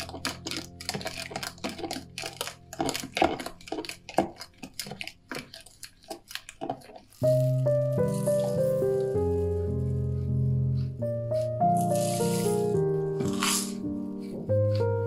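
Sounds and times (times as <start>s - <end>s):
background music with sustained notes: 0.0s - 6.4s, 7.2s - 15.0s
teaspoon stirring in plastic jug: 0.0s - 10.2s, 11.4s - 13.8s.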